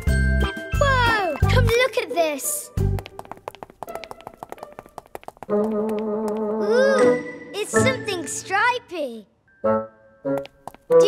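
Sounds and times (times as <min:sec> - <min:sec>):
quick soft taps: 0:03.0 - 0:06.4.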